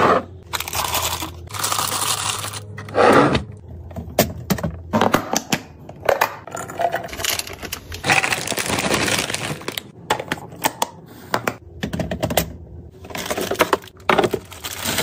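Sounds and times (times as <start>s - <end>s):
packaging crinkling: 7.2s - 9.9s, 13.2s - 15.0s.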